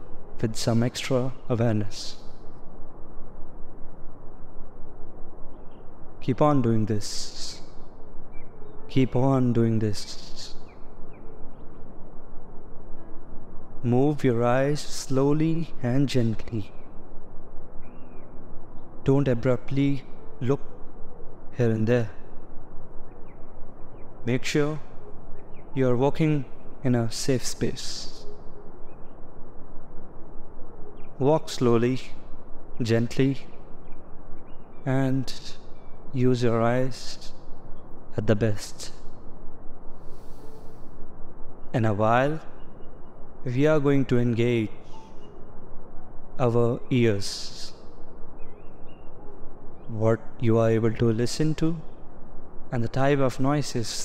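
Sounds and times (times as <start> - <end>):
outdoor background noise: 0.0 - 54.0
faint bird chirps: 3.8 - 54.0.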